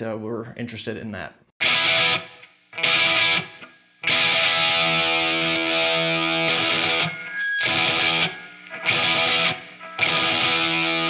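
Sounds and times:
distorted electric guitar chord stabs: 0:01.6 - 0:11.0.

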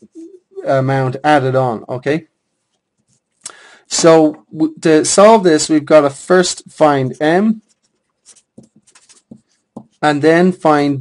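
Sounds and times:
pen scratching while writing: 0:07.6 - 0:10.0.

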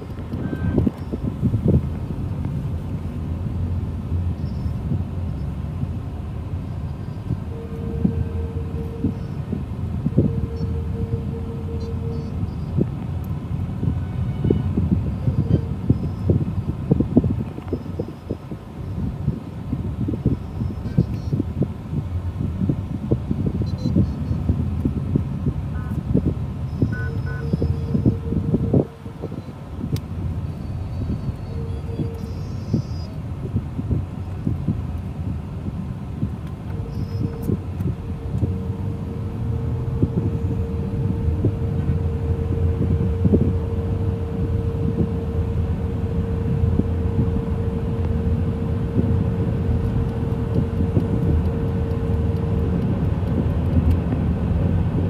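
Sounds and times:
traffic rumble: 0:00.0 - 0:55.0
vehicle horn honking: 0:00.4 - 0:01.2, 0:07.0 - 0:12.8, 0:13.8 - 0:16.2, 0:25.7 - 0:26.0, 0:26.7 - 0:29.4, 0:31.0 - 0:33.1, 0:36.7 - 0:52.8.

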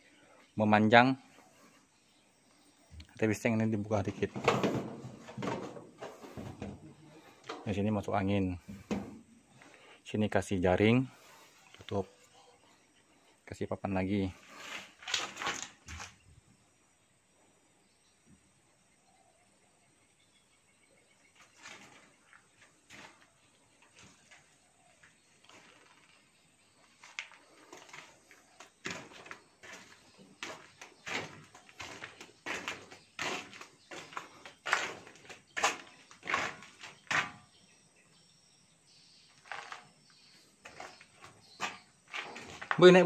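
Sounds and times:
footsteps on concrete: 0:26.8 - 0:37.5, 0:39.4 - 0:43.0.

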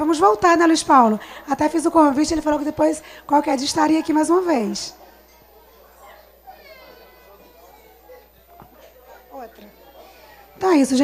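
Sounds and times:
faint background voices: 0:02.2 - 0:11.0.

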